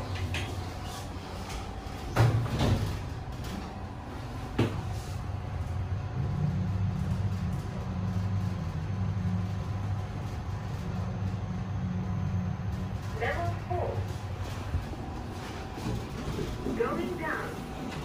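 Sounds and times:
lift low hum: 0.0s - 18.0s
lift doors thudding shut: 2.0s - 3.8s.

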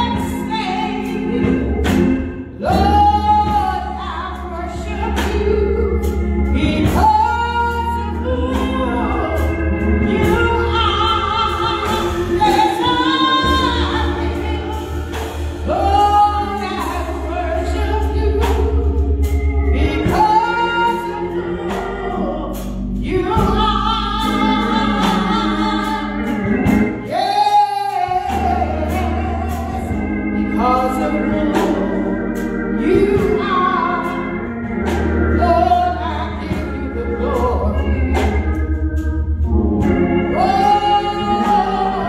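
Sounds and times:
sustained low bass notes: 0.0s - 42.0s
woman singing gospel: 0.0s - 42.0s.

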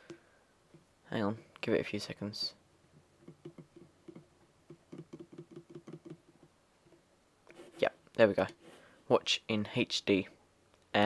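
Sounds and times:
fingers tapping computer keyboard: 3.2s - 6.3s.

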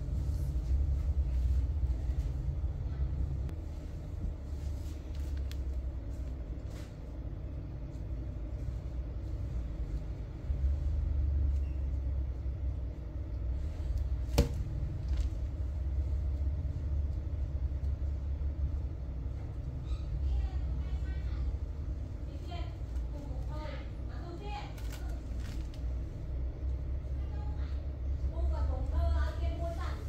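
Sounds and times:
steady low rumble: 0.0s - 30.0s.

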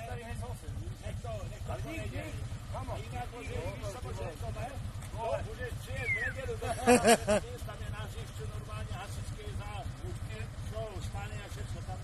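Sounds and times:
men talking: 0.0s - 12.0s
motor trike engine idling: 0.0s - 12.0s.

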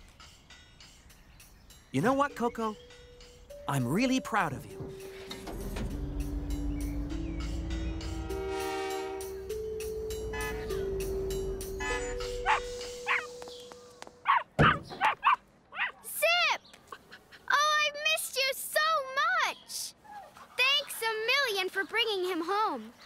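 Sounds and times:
soft background music: 0.0s - 14.4s
puppy yipping and whining: 11.9s - 13.3s.

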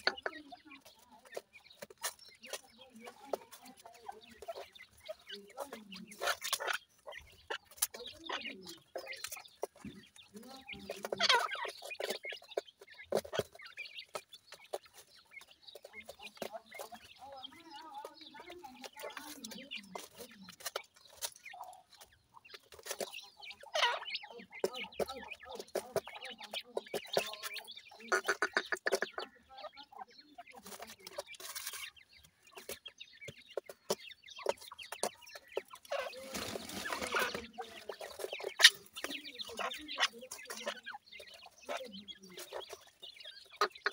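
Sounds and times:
chicks chirping and clucking: 0.0s - 43.9s
pecking in dry soil: 0.0s - 43.9s.

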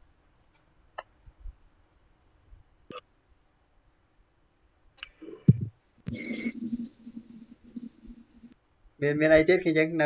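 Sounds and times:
high-pitched insect-like trill: 6.1s - 8.6s.

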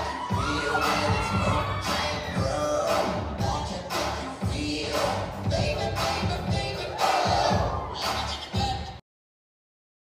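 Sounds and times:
audience shouting and cheering: 0.0s - 3.2s, 6.4s - 9.0s
dance music with heavy bass: 0.0s - 9.0s.

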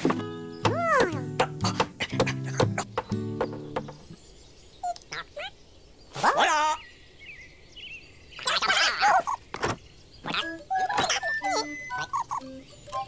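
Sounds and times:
quick knocking taps: 0.6s - 4.0s
pitched music notes: 10.4s - 13.0s.

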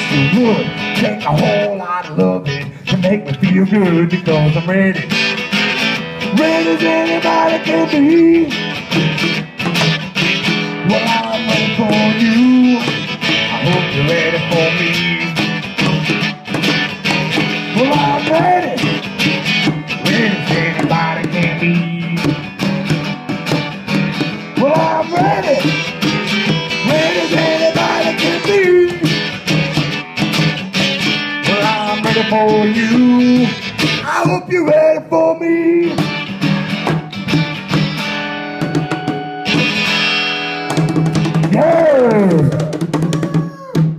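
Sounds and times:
man singing: 0.0s - 5.2s, 6.2s - 8.6s, 10.8s - 15.5s, 17.6s - 19.0s, 20.0s - 22.5s, 24.5s - 25.9s, 26.7s - 29.2s, 31.4s - 36.0s, 41.5s - 43.8s
acoustic guitar strummed blues: 0.0s - 43.9s
bongos tapping: 8.9s - 10.6s, 15.3s - 31.1s, 38.6s - 39.9s, 40.6s - 43.9s.

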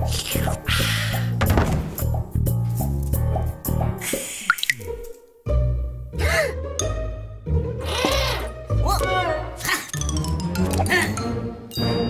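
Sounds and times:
cartoon water drip plinks: 4.5s - 5.2s.

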